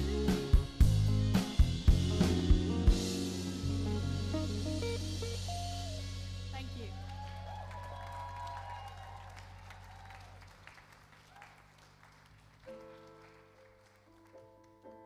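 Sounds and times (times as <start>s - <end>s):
keyboard playing soft chords: 0.0s - 6.9s
audience cheer: 6.9s - 11.7s
audience applause: 6.9s - 15.0s.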